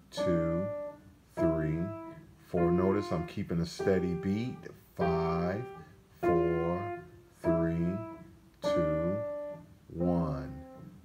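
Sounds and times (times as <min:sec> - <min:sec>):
piano single notes: 0:00.0 - 0:11.0.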